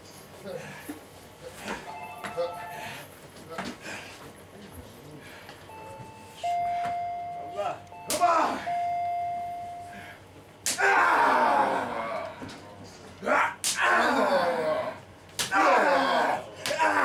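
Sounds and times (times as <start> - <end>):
steady electronic tones: 5.7 - 10.2.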